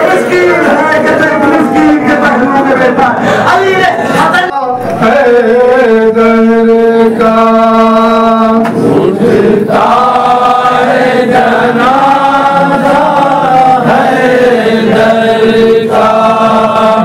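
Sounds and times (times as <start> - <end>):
man chanting through microphone: 0.0 - 17.0.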